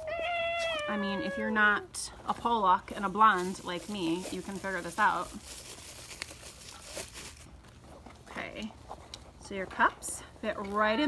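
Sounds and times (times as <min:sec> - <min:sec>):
plastic wrapping crinkling: 0:02.4 - 0:08.2.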